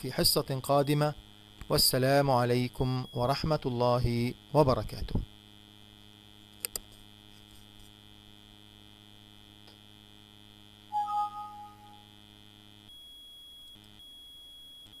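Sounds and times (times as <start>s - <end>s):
electrical mains hum: 0.0s - 12.2s
faint high whine: 10.9s - 12.2s
two-note warning chime: 11.0s - 12.1s.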